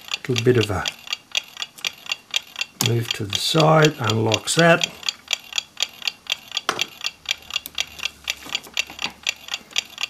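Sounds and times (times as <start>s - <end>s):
mechanical clock ticking: 0.0s - 10.0s.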